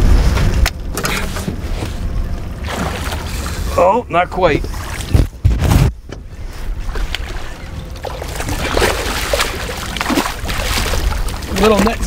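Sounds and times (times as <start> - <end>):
fish splashing at water surface: 2.6 - 3.7, 6.9 - 12.0.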